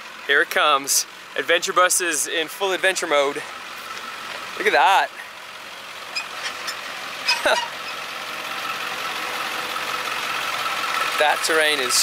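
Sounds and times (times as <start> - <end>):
bus engine running: 0.0 - 12.0.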